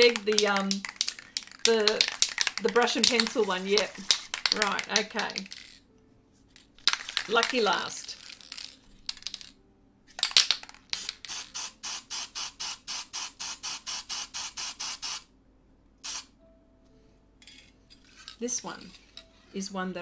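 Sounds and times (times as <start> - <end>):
aerosol can spraying bursts: 11.0 - 15.3, 16.0 - 16.3.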